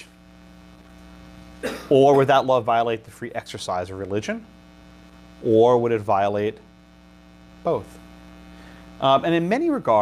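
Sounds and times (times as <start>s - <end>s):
electrical mains hum: 0.0s - 10.0s
man talking: 1.9s - 4.5s, 5.4s - 6.7s, 7.6s - 8.0s, 9.0s - 10.0s.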